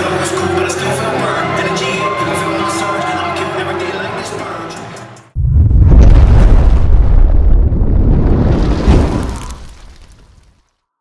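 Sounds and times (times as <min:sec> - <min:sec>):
deep rumbling explosion boom: 0:05.4 - 0:10.1.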